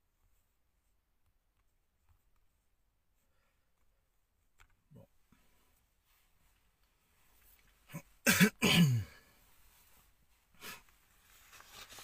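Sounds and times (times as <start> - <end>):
person clearing throat: 7.9 - 9.2.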